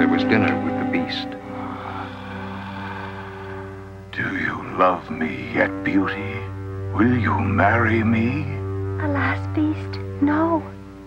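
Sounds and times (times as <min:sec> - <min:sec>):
soft background score: 0:00.0 - 0:11.0.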